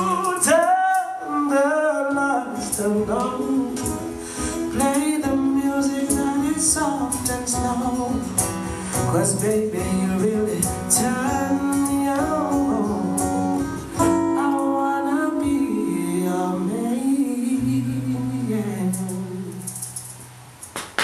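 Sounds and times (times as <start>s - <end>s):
cajon beats: 0.0s - 16.7s, 18.5s - 21.0s
person singing: 0.0s - 20.0s
strummed acoustic guitar: 0.0s - 20.7s.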